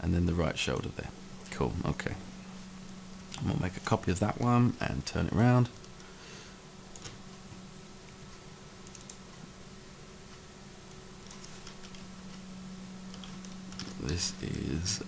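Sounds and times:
steady low hum: 0:00.0 - 0:15.0
computer keyboard clicks: 0:08.8 - 0:09.2, 0:11.2 - 0:12.0, 0:13.1 - 0:14.0.

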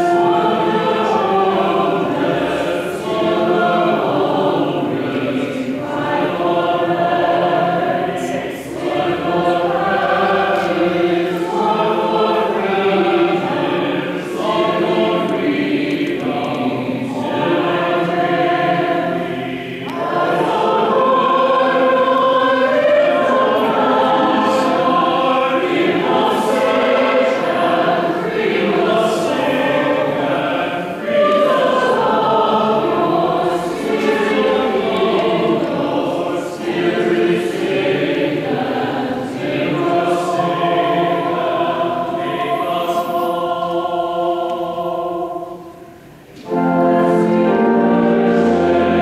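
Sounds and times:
choir singing: 0:00.0 - 0:49.0.

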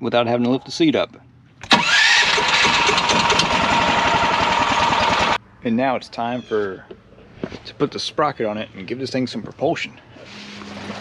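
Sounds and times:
engine running with fast pulsing: 0:01.7 - 0:05.4.

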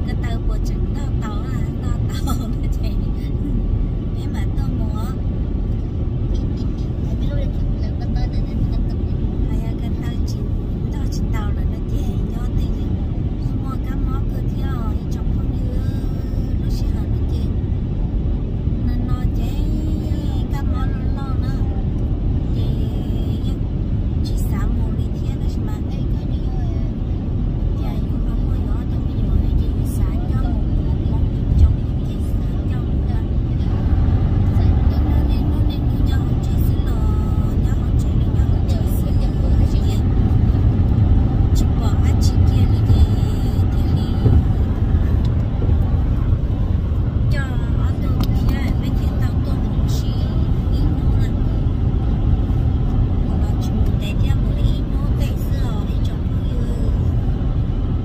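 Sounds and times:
road and engine rumble in car: 0:00.0 - 0:58.0.

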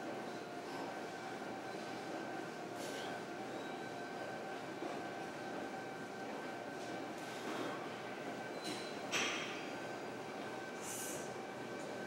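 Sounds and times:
gym room hum: 0:00.0 - 0:12.0.

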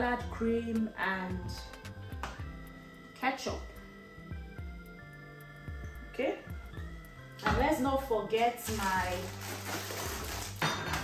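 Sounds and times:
dishes and utensils clattering: 0:10.5 - 0:11.0.

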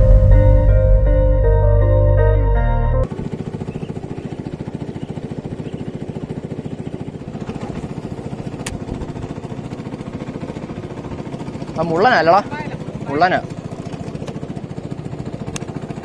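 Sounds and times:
small boat motor puttering: 0:03.0 - 0:16.0.

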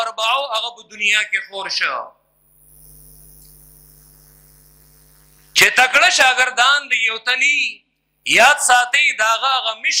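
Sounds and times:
faint mains hum: 0:00.0 - 0:10.0
light hiss: 0:02.3 - 0:05.8.

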